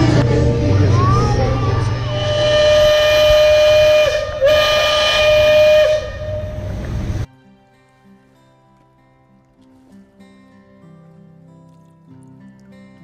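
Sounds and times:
steam whistle blasts: 0:01.8 - 0:06.8.

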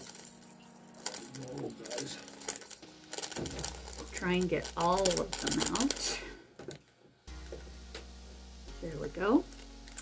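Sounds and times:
small beads rattling into tray: 0:00.0 - 0:06.1.

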